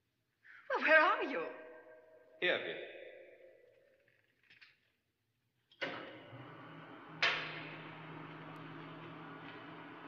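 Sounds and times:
voice echo: 0.6 - 3.9.

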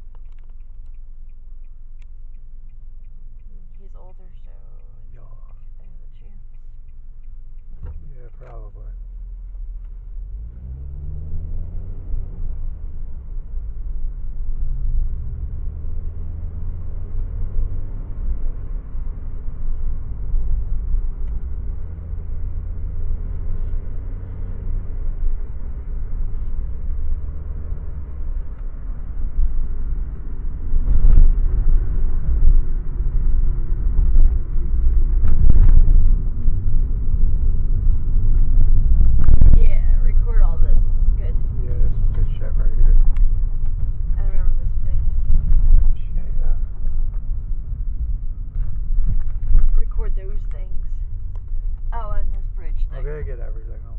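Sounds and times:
car engine revving: 0.0 - 53.9
tyres rumbling on road: 0.0 - 53.9.

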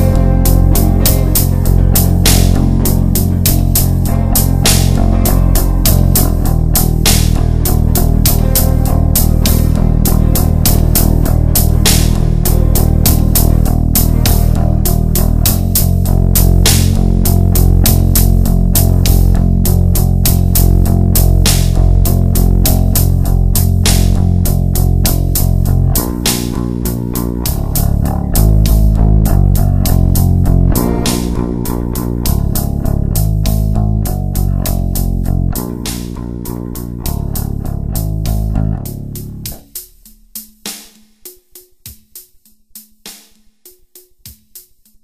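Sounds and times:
electric guitar: 0.0 - 39.6
bass guitar: 0.0 - 40.8.

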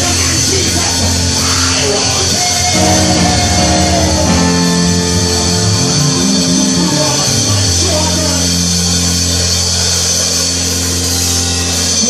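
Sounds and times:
live church band music: 0.0 - 12.0.

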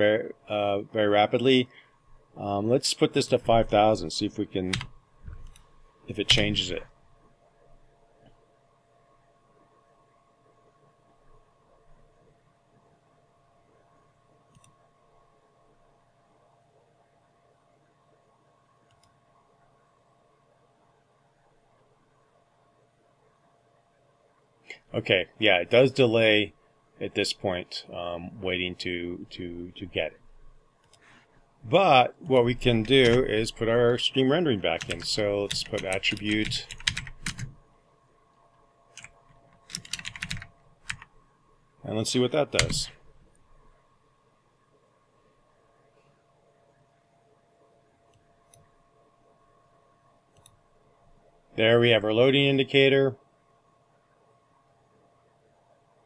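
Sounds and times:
faint steady hum: 0.0 - 56.0
computer keyboard typing: 4.7 - 5.7, 32.6 - 33.9, 34.7 - 37.6, 39.0 - 41.1, 42.5 - 42.9.

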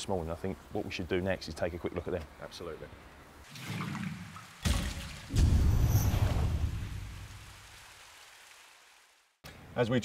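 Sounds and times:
splash-like burst: 3.5 - 9.0
deep rumbling boom: 5.3 - 7.4.

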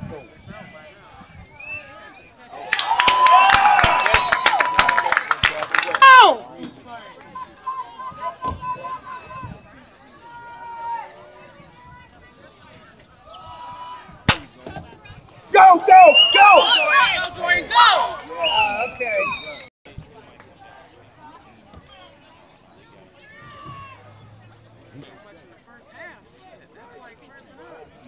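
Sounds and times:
spectators cheering and clapping: 2.5 - 6.5, 15.5 - 19.7
scattered voices: 5.4 - 28.0
person yelling: 6.0 - 6.4, 15.6 - 16.7
sharp crack: 14.3 - 14.6.

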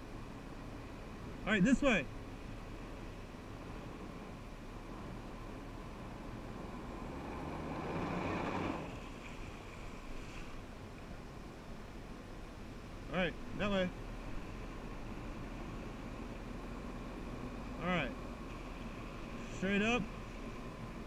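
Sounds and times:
rush of water spray: 7.4 - 10.6.

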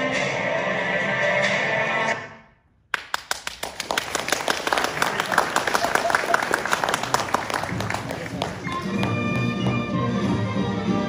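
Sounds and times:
recorded music: 0.0 - 2.4, 7.6 - 11.0
audience applause: 3.0 - 10.0.

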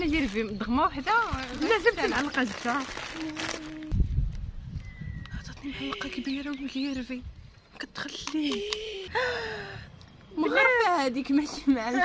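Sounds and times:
woman speaking: 0.0 - 4.0, 5.5 - 9.1, 10.3 - 12.0.

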